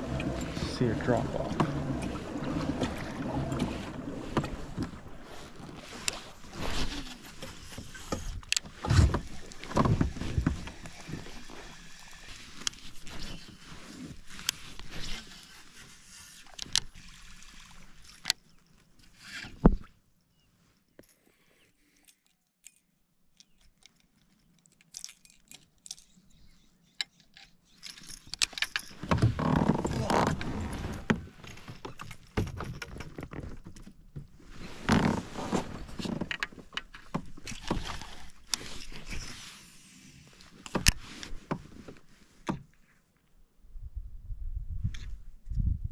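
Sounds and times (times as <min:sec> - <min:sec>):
fishing reel casting and cranking: 0:00.0 - 0:04.2
water against a hull: 0:00.0 - 0:22.5, 0:23.4 - 0:43.6.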